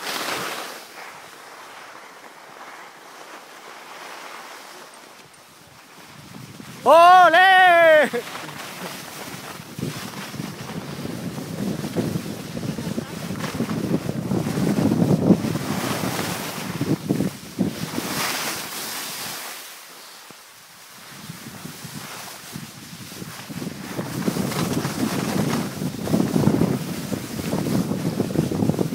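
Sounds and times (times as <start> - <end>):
skis scraping over snow: 0.0 - 28.9
wind buffeting microphone: 5.9 - 6.9, 8.1 - 18.2, 21.1 - 28.9.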